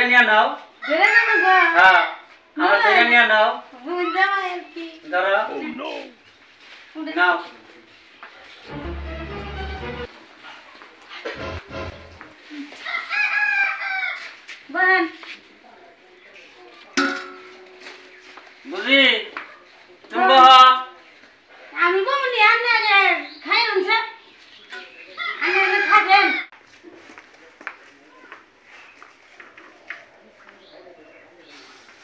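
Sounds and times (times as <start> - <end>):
rooster crowing: 12.8 - 14.4.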